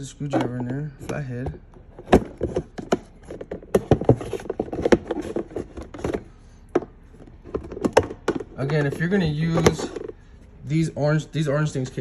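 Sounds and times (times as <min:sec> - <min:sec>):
plastic clicks and knocks: 0:02.0 - 0:10.1.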